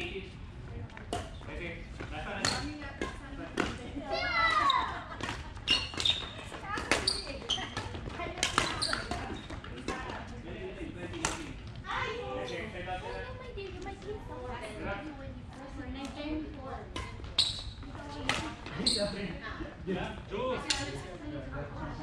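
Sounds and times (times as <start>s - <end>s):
racket hitting shuttlecock: 5.2s - 10.1s, 11.2s - 11.5s, 18.2s - 18.8s
shoe squeaks on wooden floor: 5.6s - 7.9s, 8.6s - 9.6s, 17.3s - 17.9s, 18.6s - 19.3s.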